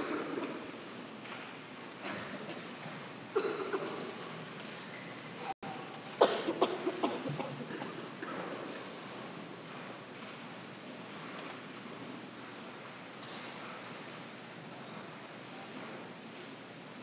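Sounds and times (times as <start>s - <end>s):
person coughing: 3.3s - 4.1s, 6.2s - 8.5s.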